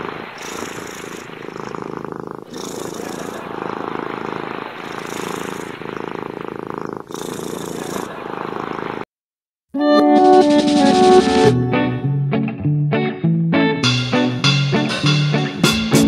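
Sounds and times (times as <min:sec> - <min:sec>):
cat purring: 0:00.0 - 0:09.1.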